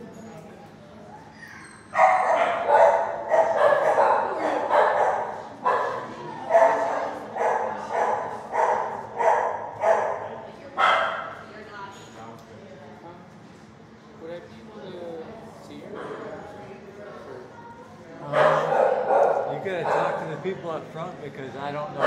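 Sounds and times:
dog barking: 2.0 - 11.3, 18.3 - 20.3.

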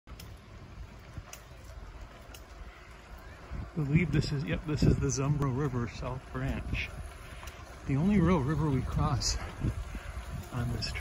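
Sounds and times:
soft ticks: 0.1 - 0.4.

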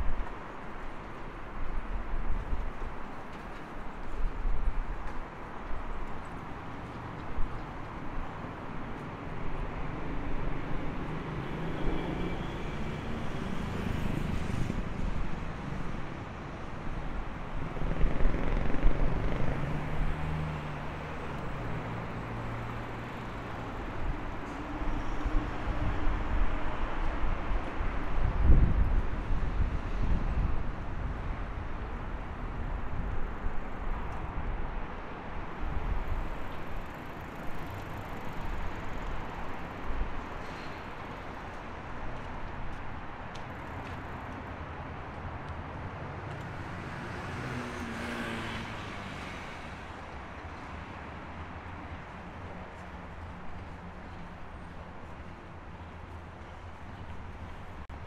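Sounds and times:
vehicles passing: 0.0 - 58.0.

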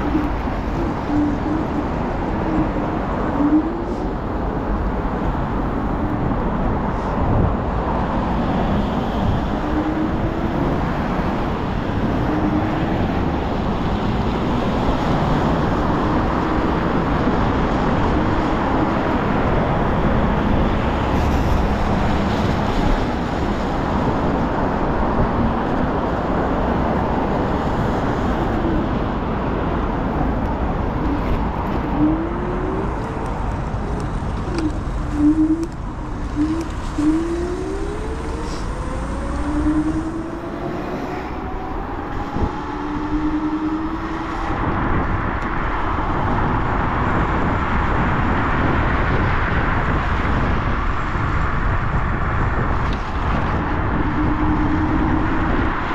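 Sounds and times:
car traffic: 0.0 - 55.9
road and wind noise: 0.0 - 55.9
faint wavering whine: 31.8 - 44.3.

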